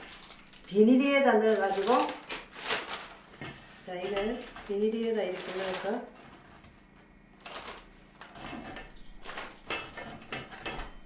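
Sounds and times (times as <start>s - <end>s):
plastic bag crinkling: 0.0s - 6.5s, 7.4s - 9.6s.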